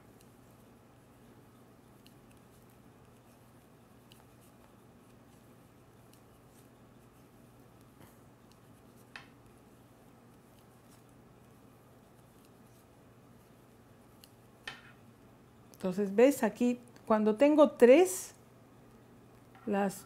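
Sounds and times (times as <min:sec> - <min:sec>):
low steady hum: 0:00.0 - 0:20.0
knitting needles clicking: 0:01.8 - 0:05.4.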